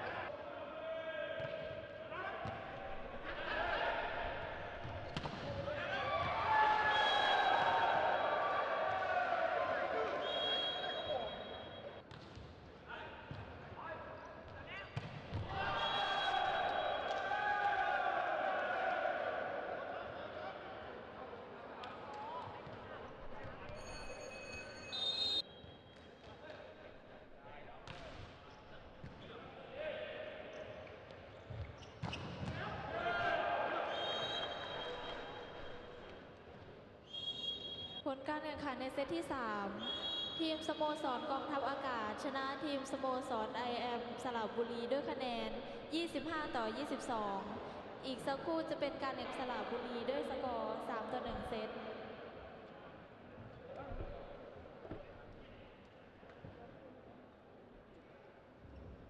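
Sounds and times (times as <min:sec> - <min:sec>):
referee's whistle: 0:06.8 - 0:08.3, 0:10.1 - 0:12.0, 0:15.6 - 0:17.2, 0:23.8 - 0:26.0, 0:33.9 - 0:35.9, 0:37.0 - 0:38.1, 0:39.7 - 0:40.6.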